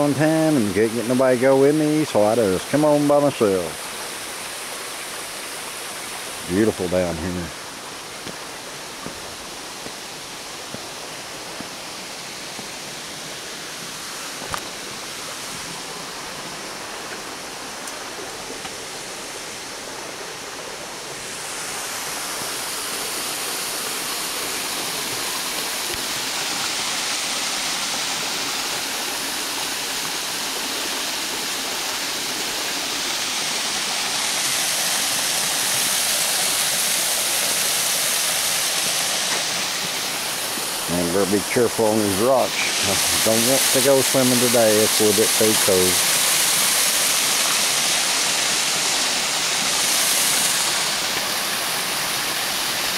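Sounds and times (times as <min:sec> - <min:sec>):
waterfall and creek rushing: 0:00.0 - 0:52.9.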